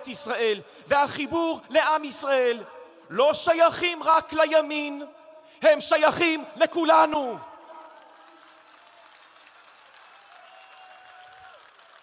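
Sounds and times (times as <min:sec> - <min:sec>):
distant crowd applause: 0:07.7 - 0:12.0.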